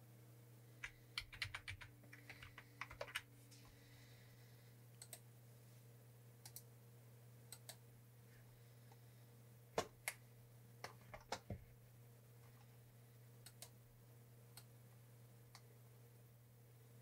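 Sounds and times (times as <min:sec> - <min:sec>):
low steady hum: 0:00.0 - 0:17.0
sharp computer clicks: 0:05.0 - 0:05.2.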